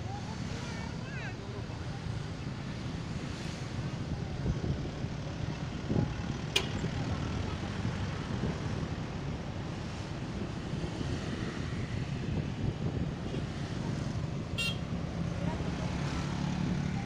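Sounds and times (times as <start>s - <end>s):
road noise: 0.0s - 17.0s.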